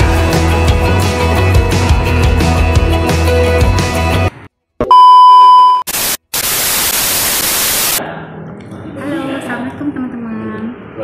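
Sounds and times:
background music: 0:00.0 - 0:04.3
loud steady beep tone: 0:04.9 - 0:08.0
tv static hiss: 0:05.8 - 0:08.0.

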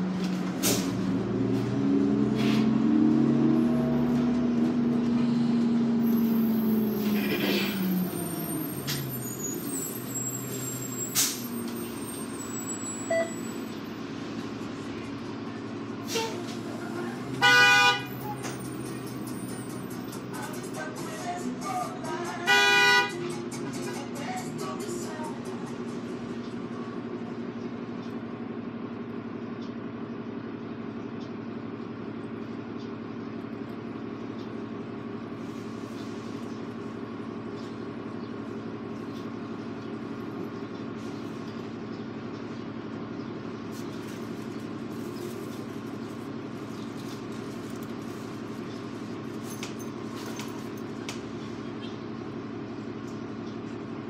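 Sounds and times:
bus diesel engine idling: 0:00.0 - 0:54.0
vehicle horn honks: 0:17.4 - 0:18.2, 0:22.4 - 0:23.2.

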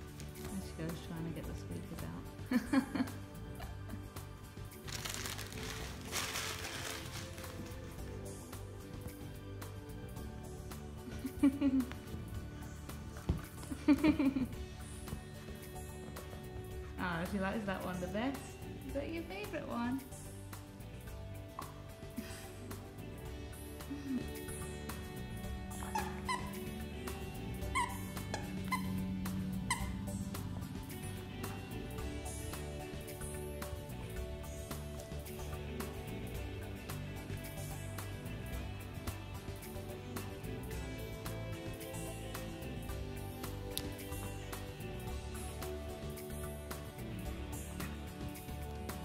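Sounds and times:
background music: 0:00.0 - 0:49.0
toy squeaker squeaking: 0:25.8 - 0:26.8, 0:27.6 - 0:29.0, 0:29.7 - 0:30.0.

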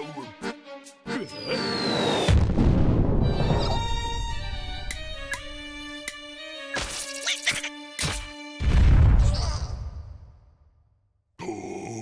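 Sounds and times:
crash: 0:02.2 - 0:04.2.

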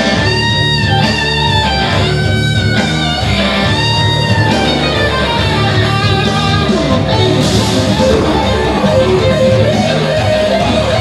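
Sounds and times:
low accompaniment: 0:07.4 - 0:09.8.

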